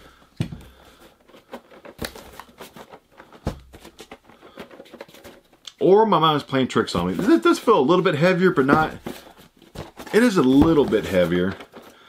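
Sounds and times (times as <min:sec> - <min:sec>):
cardboard boxes being shaken: 0:00.4 - 0:05.5, 0:06.8 - 0:12.0
object knocking inside box: 0:03.4 - 0:04.1, 0:08.6 - 0:11.8.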